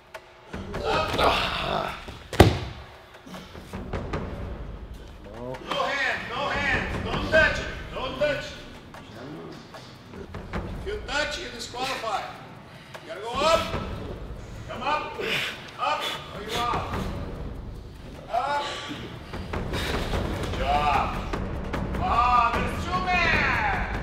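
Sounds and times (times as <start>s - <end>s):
men shouting and groaning: 0.5s - 2.3s, 5.4s - 8.7s, 18.0s - 19.5s, 20.2s - 24.0s
thumps on a mat: 2.3s - 2.9s.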